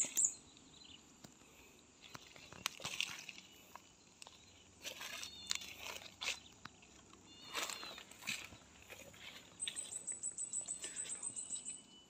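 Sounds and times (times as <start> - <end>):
footsteps on dry leaves: 2.0 - 11.3
high chirping animal calls: 4.8 - 6.6, 7.2 - 12.0.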